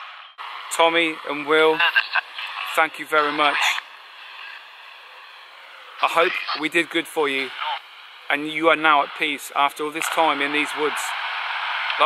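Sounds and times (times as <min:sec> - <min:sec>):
steady low hiss: 0:00.4 - 0:12.0.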